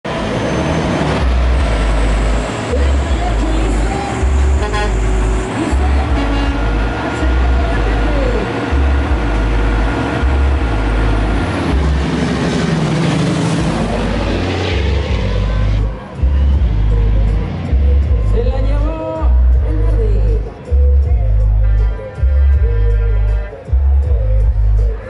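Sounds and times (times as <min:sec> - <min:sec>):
voices: 0:02.6 - 0:11.6
heavy bass beat thumping: 0:03.0 - 0:12.4, 0:15.1 - 0:25.0.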